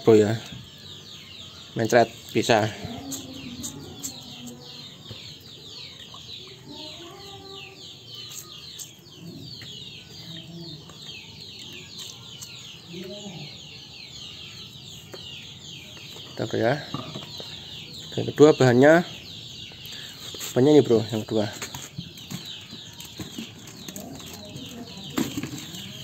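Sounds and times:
chickens clucking: 1.9s - 13.6s, 14.9s - 26.0s.

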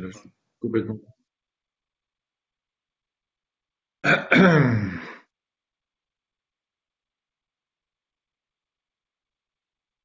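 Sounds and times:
man coughing: 4.0s - 5.2s.

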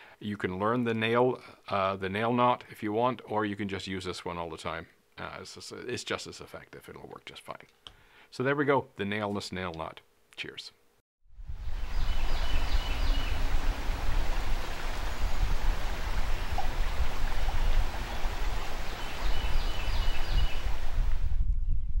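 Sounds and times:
river water rushing: 11.9s - 21.1s.

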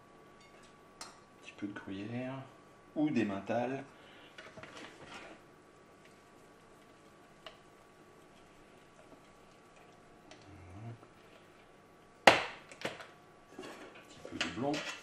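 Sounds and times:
spatula folding mixture in saucepan: 4.4s - 10.4s.

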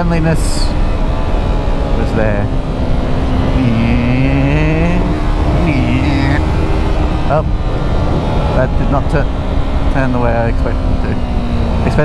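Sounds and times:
motorcycle engine running: 0.0s - 12.0s
wind rushing: 0.5s - 11.9s.

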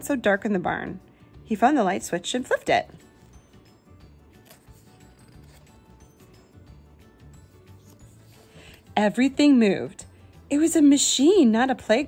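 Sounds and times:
quiet background music: 0.0s - 12.0s
book page turning: 2.8s - 6.4s, 7.4s - 9.0s.

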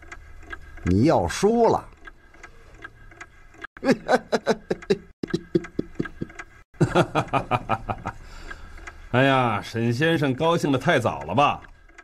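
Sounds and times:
faint regular ticking: 0.0s - 12.0s
man laughing: 3.8s - 8.2s.

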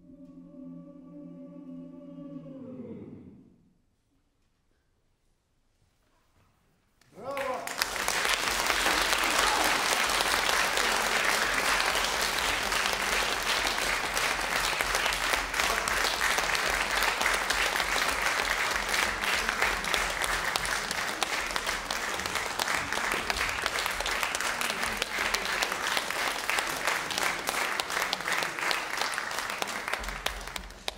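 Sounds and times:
audience applauding: 7.2s - 30.9s.

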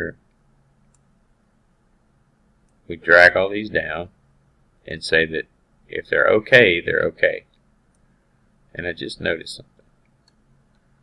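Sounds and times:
person speaking: 0.0s - 0.3s, 2.8s - 4.2s, 4.8s - 7.6s, 8.7s - 9.8s
faint computer mouse clicks: 0.2s - 1.1s, 9.8s - 10.9s.

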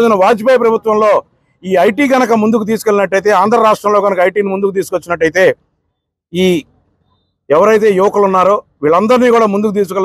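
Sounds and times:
man talking: 0.0s - 5.6s, 6.3s - 6.8s, 7.5s - 10.0s.

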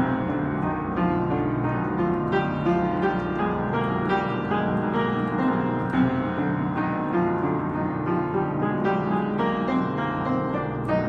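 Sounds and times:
upright piano playing: 0.0s - 11.0s.

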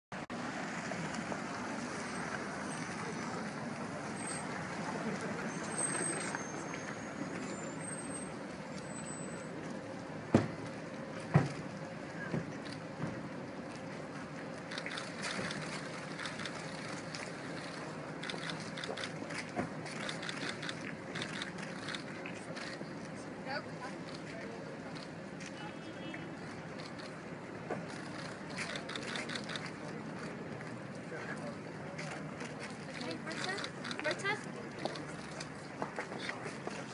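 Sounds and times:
outdoor background noise: 0.1s - 36.9s
car driving slowly past: 0.2s - 23.2s.

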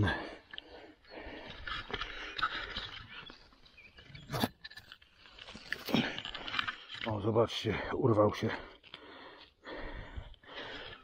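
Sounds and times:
rustling of dry needles and twigs: 0.8s - 9.6s.

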